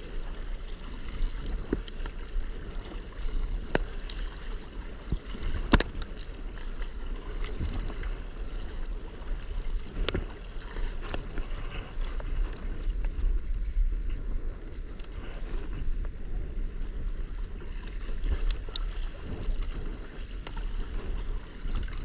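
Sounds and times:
water lapping against kayak hull: 0:00.0 - 0:22.0
wind rumbling on microphone: 0:00.0 - 0:22.0.

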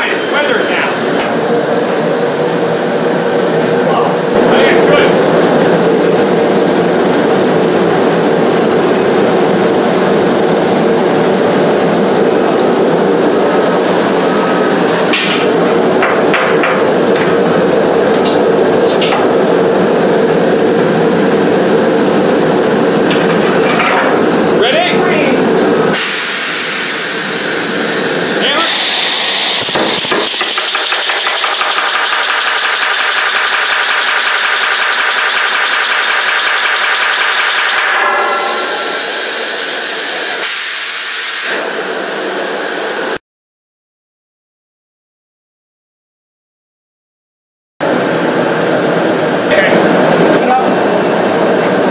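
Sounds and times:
loud rushing noise: 0:00.0 - 0:30.4, 0:37.7 - 0:43.2
pneumatic riveter running: 0:25.9 - 0:41.7.

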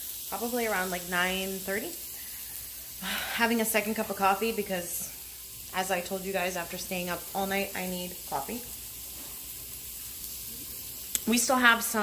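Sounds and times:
food sizzling in a pan: 0:00.0 - 0:12.0.

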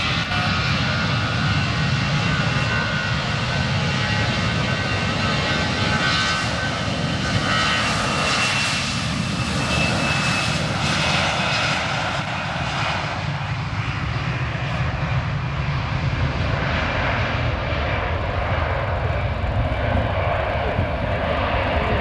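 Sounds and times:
jet engines roaring: 0:00.0 - 0:22.0.

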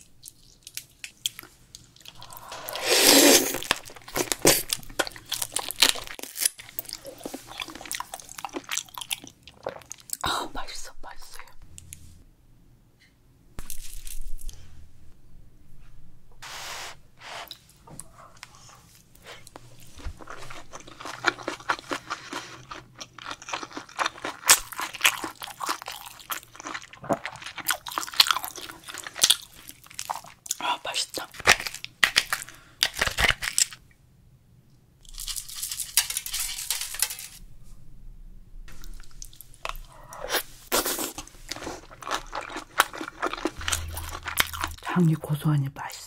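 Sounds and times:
crab shell crunching: 0:03.3 - 0:10.2, 0:20.2 - 0:30.5, 0:39.1 - 0:45.0
wet chewing: 0:38.7 - 0:44.9.

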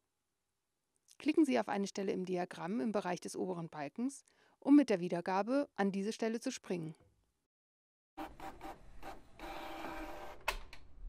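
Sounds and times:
printer mechanism whirring: 0:08.2 - 0:10.6.

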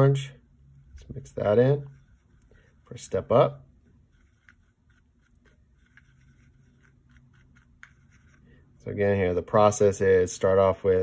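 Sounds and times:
low steady hum: 0:00.0 - 0:11.0
paintbrush scraping in palette: 0:01.2 - 0:08.8.

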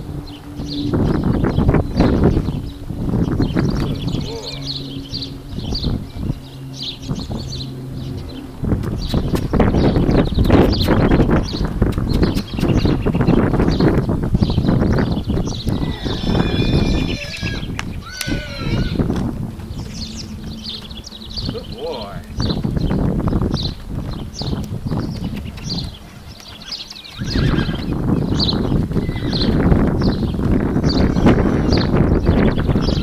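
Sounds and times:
birds chirping: 0:00.0 - 0:33.0
horse hoofbeats on dirt: 0:07.5 - 0:33.0
gliding bird calls: 0:25.3 - 0:29.6.

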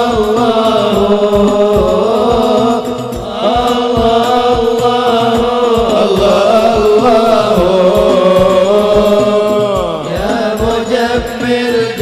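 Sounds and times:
hand-struck drums beat: 0:00.0 - 0:12.0
men chanting through microphones: 0:00.0 - 0:12.0.

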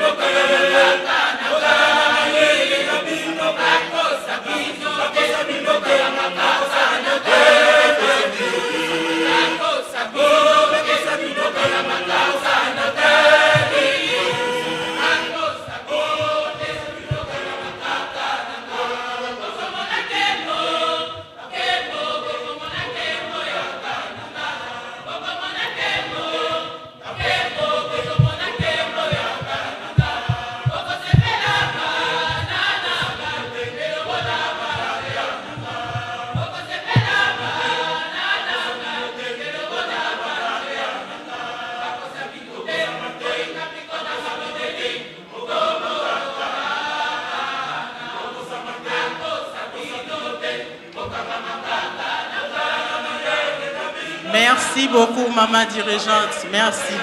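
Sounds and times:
choir singing a hymn: 0:00.0 - 0:57.0
low thumps: 0:11.6 - 0:18.1, 0:22.6 - 0:37.8.

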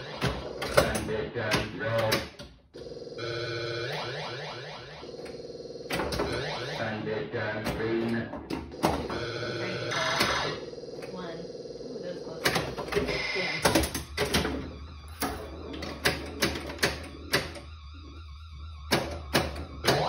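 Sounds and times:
pinball machine beeping tones: 0:00.0 - 0:20.0.

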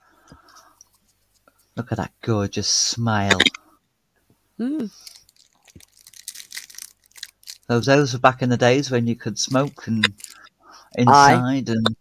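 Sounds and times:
soft irregular clicks and crackles: 0:00.2 - 0:01.8, 0:03.3 - 0:07.7.

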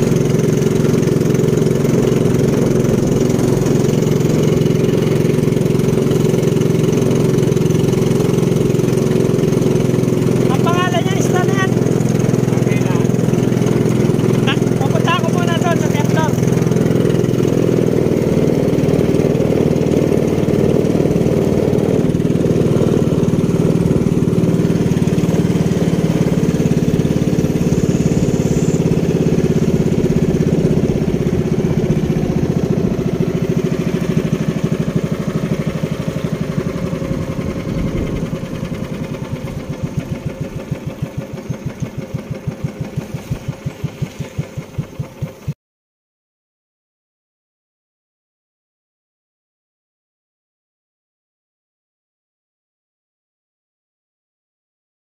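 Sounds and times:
boat engine chugging: 0:00.0 - 0:45.6.

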